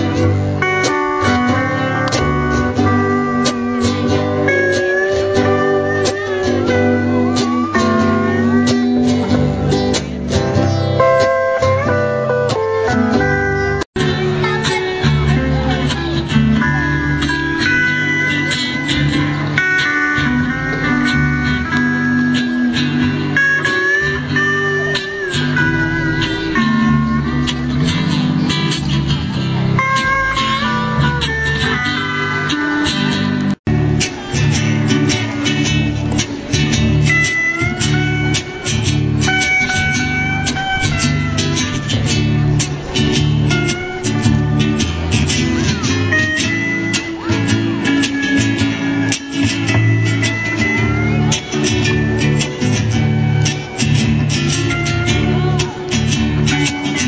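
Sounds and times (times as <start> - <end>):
bass line: 0.0 - 57.0
steel guitar sliding melody: 0.0 - 57.0
strummed chords: 0.0 - 57.0.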